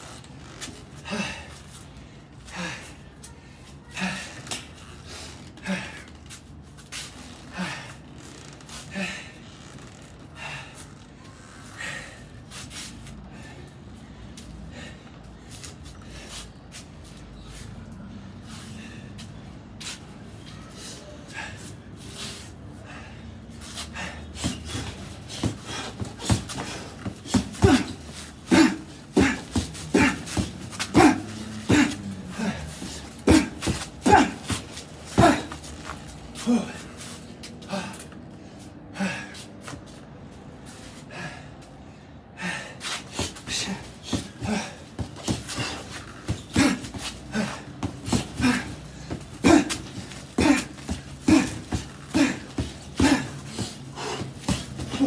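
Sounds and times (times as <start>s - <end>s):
gloved punches on heavy bag: 24.4s - 32.6s, 33.2s - 35.6s, 43.2s - 55.0s.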